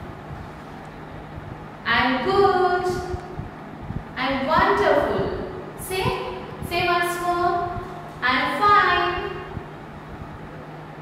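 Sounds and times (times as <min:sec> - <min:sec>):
faint low hum: 0:00.0 - 0:11.0
woman speaking: 0:01.9 - 0:03.2, 0:04.2 - 0:09.5.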